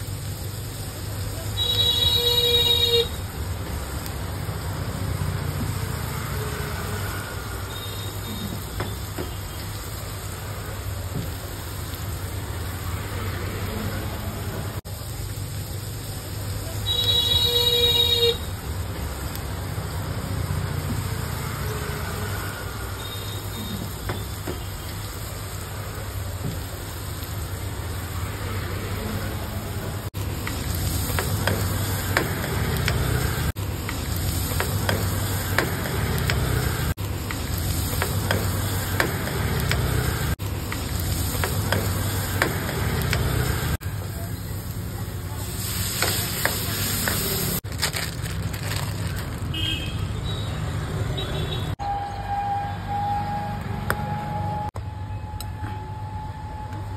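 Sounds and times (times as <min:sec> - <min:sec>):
vegetables sizzling in a pan: 0:00.0 - 0:51.0.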